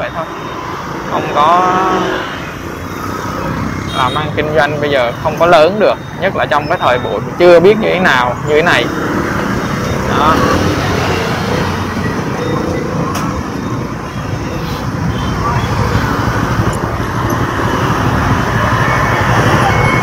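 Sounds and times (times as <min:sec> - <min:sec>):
city street traffic: 0:00.0 - 0:20.0.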